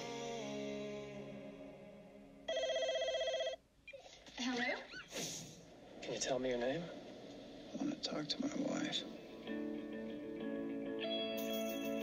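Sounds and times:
telephone ringing: 2.5s - 3.6s.

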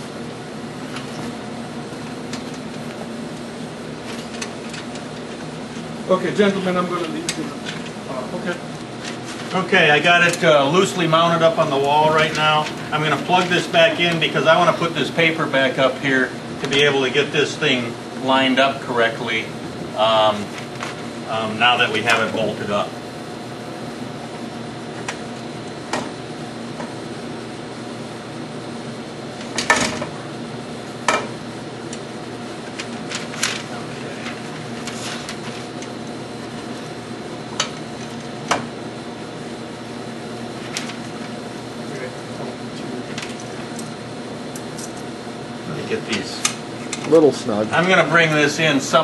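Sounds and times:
room hum: 0.0s - 49.0s.

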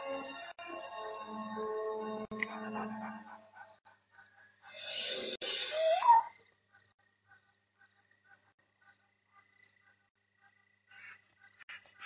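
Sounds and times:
film score sustained notes: 0.0s - 3.7s.

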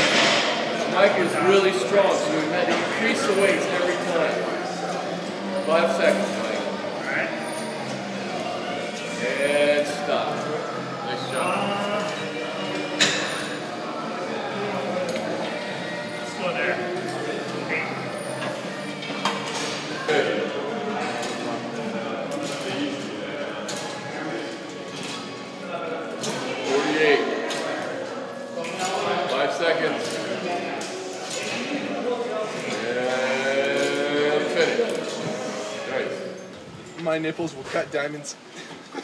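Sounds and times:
indistinct voices: 0.0s - 36.5s.

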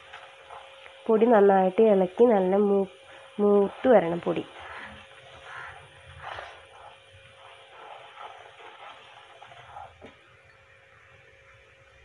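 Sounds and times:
faint steady hum: 0.0s - 12.0s
spatula scraping pan: 3.0s - 10.2s
thick sauce bubbling and sizzling: 3.0s - 12.0s.

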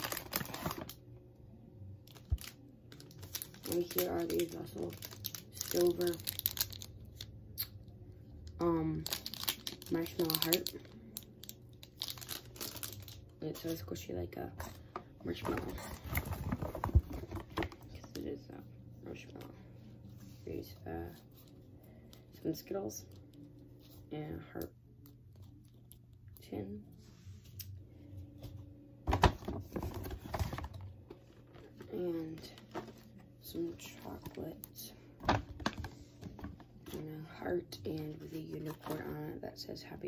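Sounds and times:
foil wrapper crinkling: 0.0s - 1.0s, 2.1s - 7.2s, 9.0s - 13.3s
gift items handling clicks and rustles: 0.0s - 1.0s, 2.1s - 7.3s, 8.9s - 18.4s, 29.1s - 37.0s, 37.9s - 39.1s.

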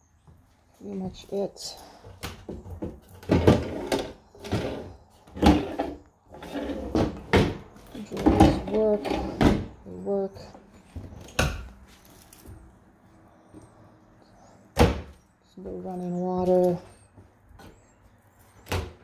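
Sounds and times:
cabinet doors banging: 6.8s - 9.8s, 14.8s - 15.2s.

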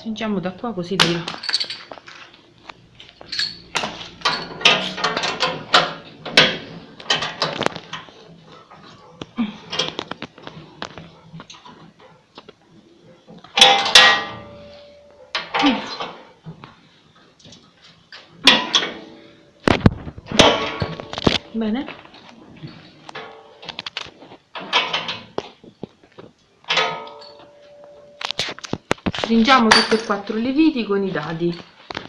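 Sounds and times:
wrench clinking on bolts: 1.0s - 2.3s, 3.2s - 6.5s, 26.7s - 28.4s, 29.6s - 30.4s
ringing metal clank: 3.3s - 5.4s, 13.6s - 15.1s, 26.7s - 28.3s, 29.7s - 30.3s.

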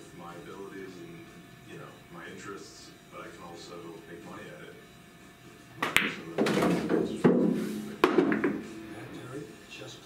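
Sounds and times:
ball knock: 5.8s - 8.6s
cue tip striking ball: 5.8s - 8.6s
pool balls clacking: 5.8s - 8.7s.

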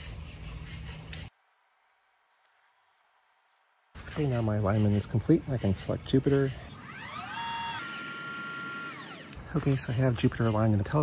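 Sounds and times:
motor whine: 0.9s - 4.2s, 5.4s - 11.0s.

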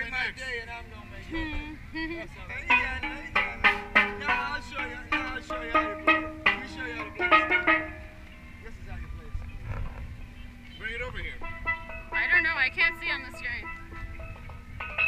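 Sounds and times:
steel pans struck with mallets: 2.7s - 8.2s, 11.4s - 15.0s.

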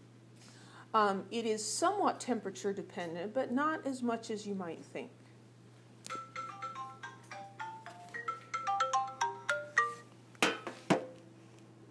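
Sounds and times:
phone ringtone: 6.1s - 10.1s.

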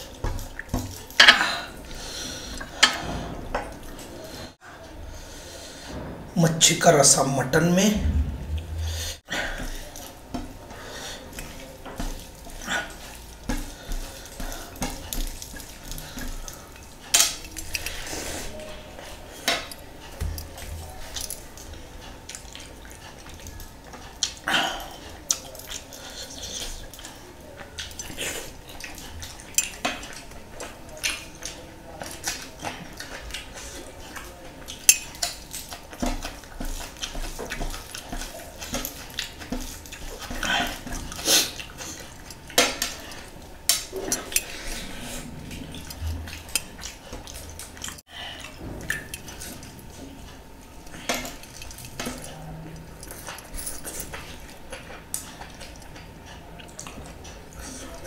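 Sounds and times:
chewing: 0.0s - 6.1s, 9.4s - 58.0s.

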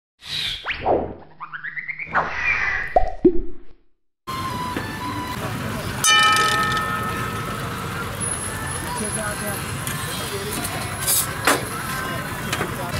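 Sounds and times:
outdoor street stall noise: 4.3s - 12.9s
ringing metallic clang: 6.0s - 7.8s.

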